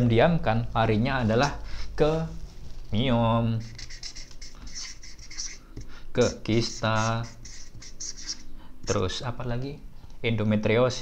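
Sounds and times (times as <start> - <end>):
marker pen scratching on paper: 3.6 - 9.0.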